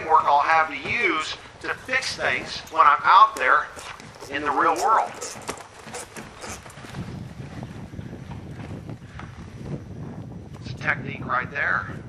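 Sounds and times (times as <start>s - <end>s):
spur rowels zinging: 0.0s - 7.7s
wind rumble on microphone: 0.0s - 12.0s.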